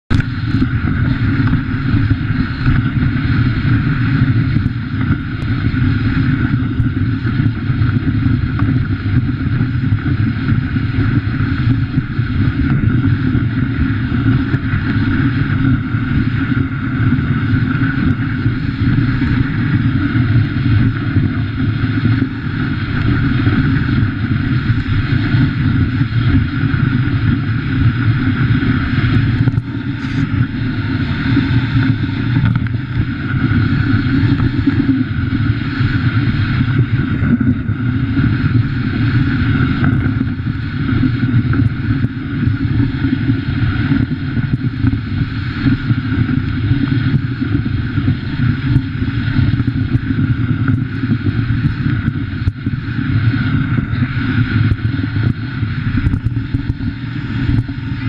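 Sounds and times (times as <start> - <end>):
wind on microphone: 0.0 - 58.0
sled runners sliding over snow: 0.1 - 58.0.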